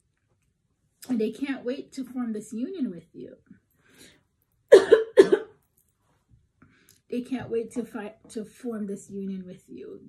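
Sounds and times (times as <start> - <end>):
woman coughing: 4.7 - 5.5.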